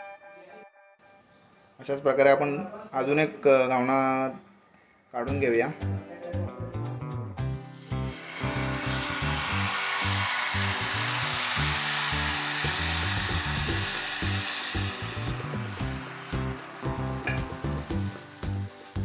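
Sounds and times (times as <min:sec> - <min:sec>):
batter sizzling on a griddle: 0:07.7 - 0:19.0.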